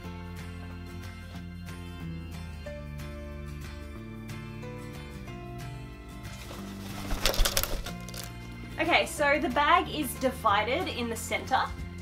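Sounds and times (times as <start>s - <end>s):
background music: 0.0s - 12.0s
parrot wingbeats: 6.4s - 8.3s.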